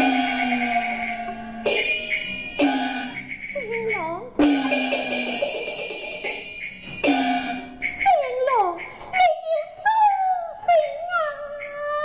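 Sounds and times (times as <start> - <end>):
held instrument notes: 0.0 - 12.0
struck percussion ring: 1.6 - 3.4, 4.4 - 7.9.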